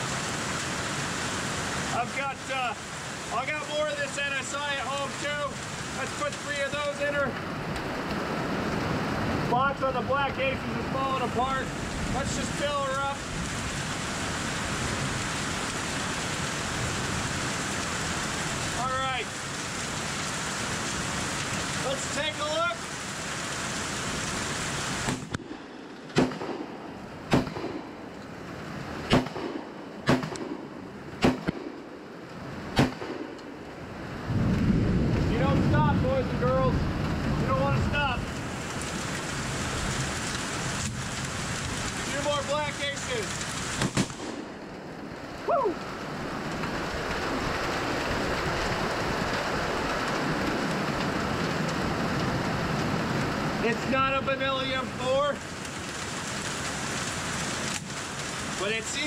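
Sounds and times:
heavy rain: 0:00.0 - 0:59.0
shotgun shots: 0:25.0 - 0:28.0, 0:29.1 - 0:31.9, 0:32.8 - 0:33.4, 0:43.8 - 0:44.5
low rumble: 0:29.1 - 0:39.1.

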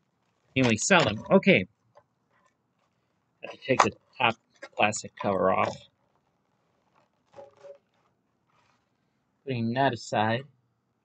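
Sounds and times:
plastic cover creaking: 0:02.8 - 0:09.1
soft touch of plastic: 0:05.6 - 0:09.1.

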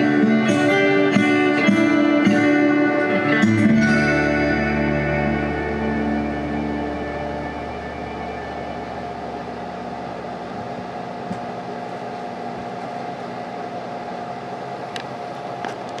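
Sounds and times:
guitar amplifier hum and hiss: 0:00.0 - 0:16.0.

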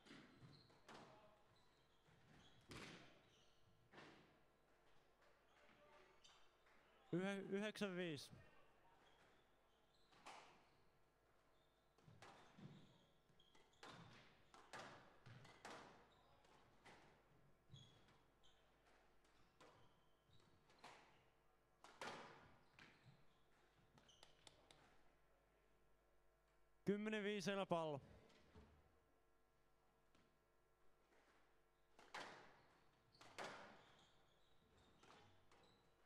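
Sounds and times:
squash ball hitting rackets and walls: 0:13.5 - 0:16.0, 0:21.8 - 0:22.6, 0:32.0 - 0:33.8.

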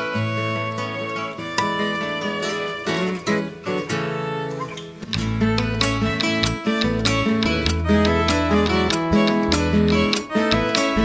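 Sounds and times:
acoustic guitar: 0:00.0 - 0:11.0
violin: 0:00.0 - 0:11.0.

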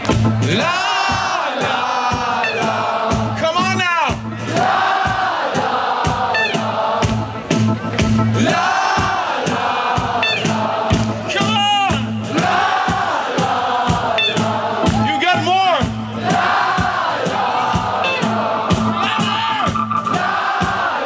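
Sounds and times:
crowd singing along: 0:00.0 - 0:21.0
live band playing: 0:00.0 - 0:21.0.

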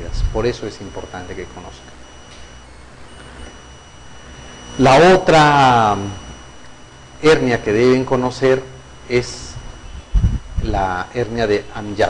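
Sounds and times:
background hum and hiss: 0:00.0 - 0:12.0
faint high-pitched electrical whine: 0:00.0 - 0:12.0.

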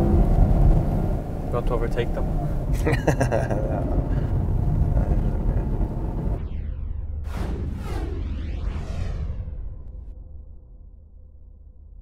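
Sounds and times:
car cabin noise: 0:00.0 - 0:06.4
sweeping whooshes: 0:00.0 - 0:10.6
deep rumble: 0:00.0 - 0:12.0.

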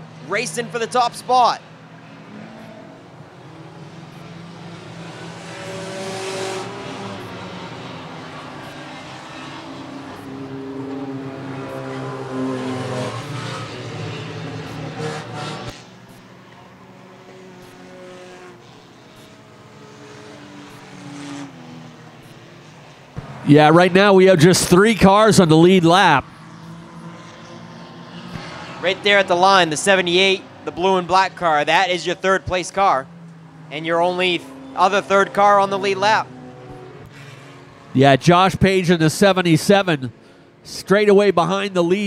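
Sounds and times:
race car engines: 0:00.0 - 0:42.0.

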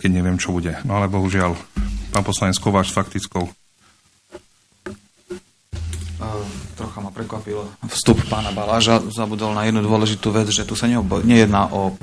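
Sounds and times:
microphone hum: 0:05.8 - 0:07.2.

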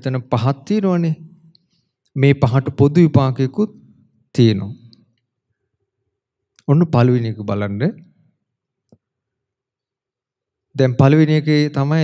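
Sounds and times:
man speaking: 0:00.0 - 0:01.2, 0:02.2 - 0:04.9, 0:06.6 - 0:08.0, 0:10.8 - 0:12.0.

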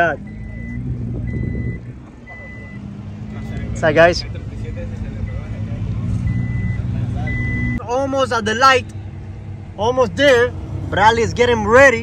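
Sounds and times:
car engines idling: 0:00.0 - 0:12.0
repeating electronic beep: 0:00.2 - 0:07.8.

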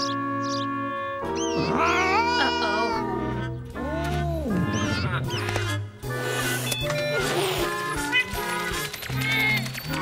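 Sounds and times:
background music: 0:00.0 - 0:10.0
cartoon cat meowing: 0:01.4 - 0:05.3.

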